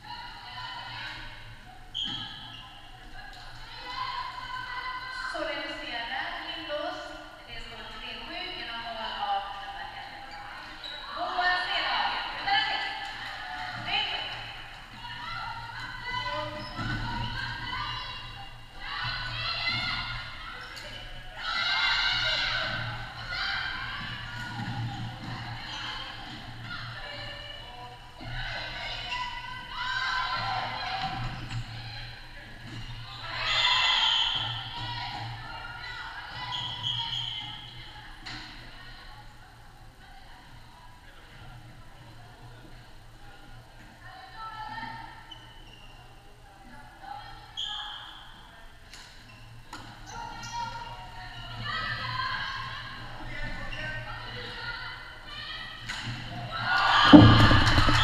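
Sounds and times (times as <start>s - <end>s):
players shouting in a hall: 0.0s - 40.5s, 50.1s - 58.0s.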